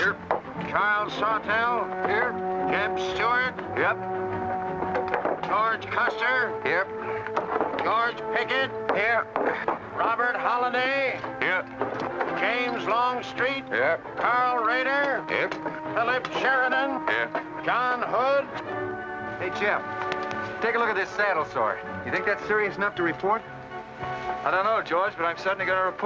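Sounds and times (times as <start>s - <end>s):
men talking over one another: 0.0s - 18.7s, 19.4s - 23.5s, 24.3s - 26.0s
film score held notes: 0.0s - 26.0s.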